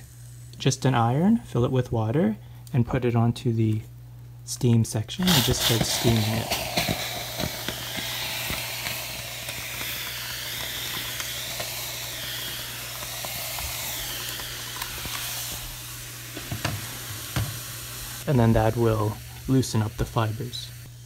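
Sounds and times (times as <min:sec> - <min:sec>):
steam iron hissing: 0:05.2 - 0:21.0.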